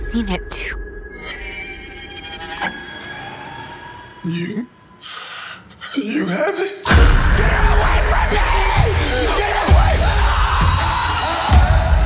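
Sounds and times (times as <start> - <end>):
eerie high-pitched drone: 0.0 - 5.7.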